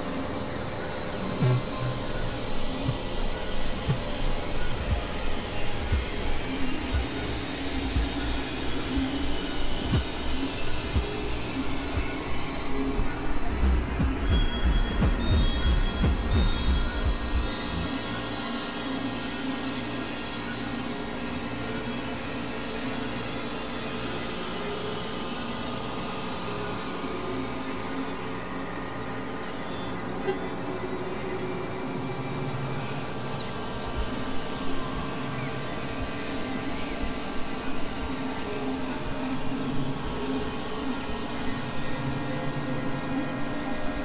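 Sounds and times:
synthesizer drone music: 0:00.0 - 0:18.8.

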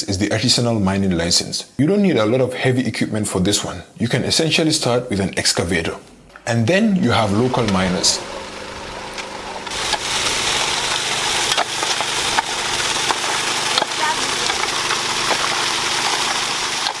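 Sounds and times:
water pump engine running: 0:07.0 - 0:17.0
water spray hissing: 0:07.0 - 0:17.0.

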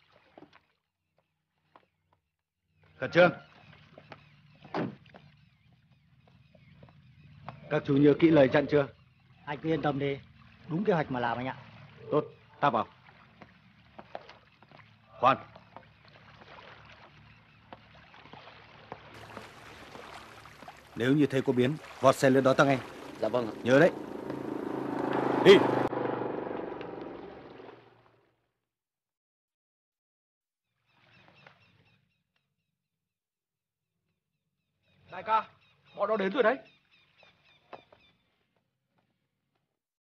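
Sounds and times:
footsteps on paved path: 0:13.4 - 0:14.9.

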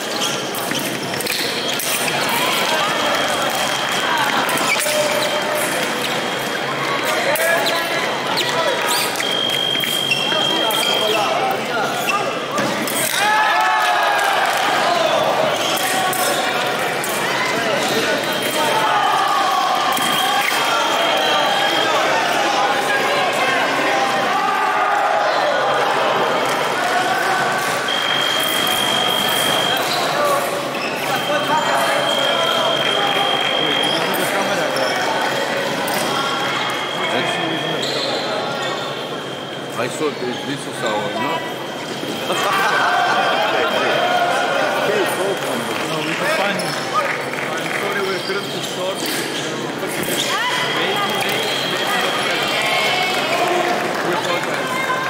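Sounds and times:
shouts echoing in hall: 0:00.0 - 0:55.0.

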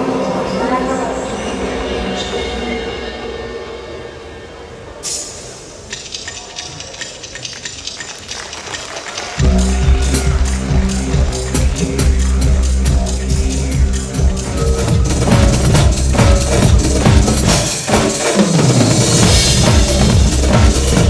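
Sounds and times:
acoustic drum kit: 0:05.9 - 0:21.0
heavy bass backing track: 0:09.4 - 0:21.0.

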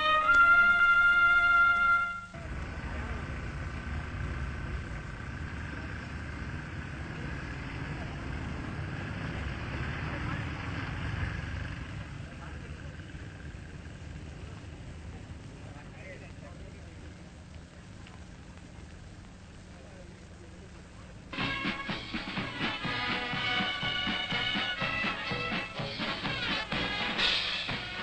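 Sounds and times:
low steady rumble: 0:00.0 - 0:28.0.

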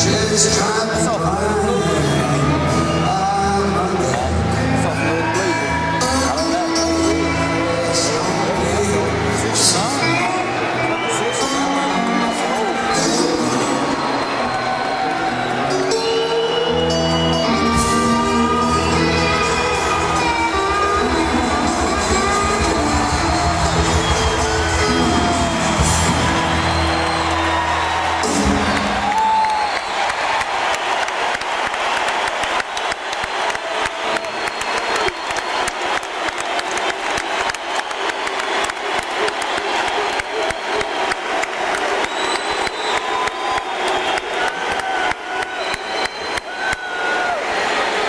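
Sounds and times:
live rock band: 0:00.0 - 0:29.6
crowd cheering and applauding: 0:00.0 - 0:48.0.

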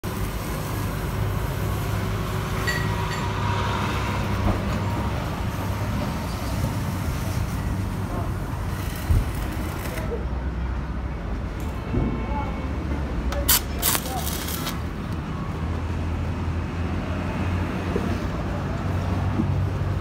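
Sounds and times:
road traffic: 0:00.0 - 0:20.0.

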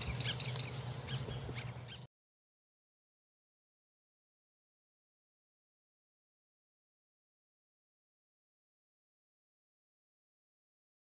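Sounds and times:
birds chirping: 0:00.0 - 0:02.1
low steady hum: 0:00.0 - 0:02.1.

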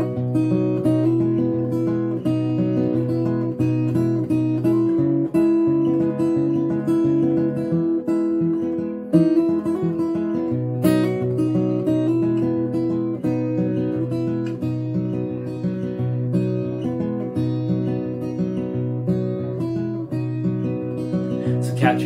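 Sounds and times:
fingerpicked acoustic guitar: 0:00.0 - 0:22.0.

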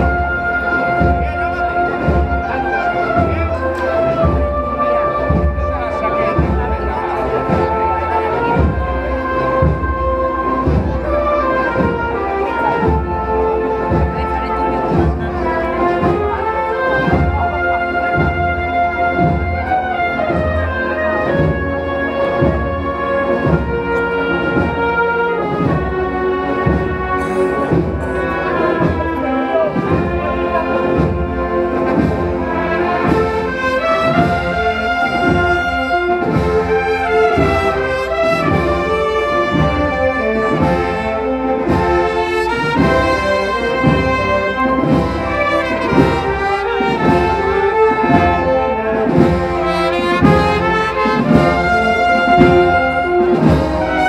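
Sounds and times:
trumpets and trombones melody: 0:00.0 - 0:54.0
slow drum beat: 0:25.6 - 0:33.4, 0:41.7 - 0:54.0.

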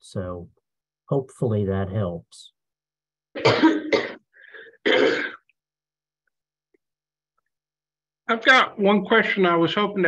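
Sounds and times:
person coughing: 0:03.4 - 0:05.5.

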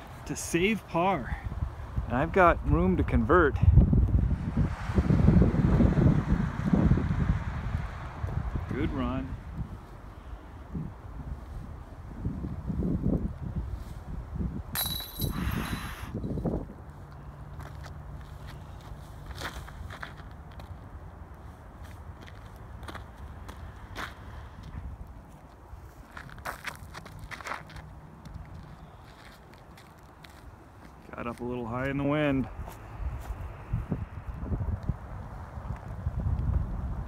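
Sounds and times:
wind buffeting microphone: 0:01.2 - 0:16.9, 0:31.8 - 0:37.0
metallic chain jingle: 0:14.8 - 0:15.8.

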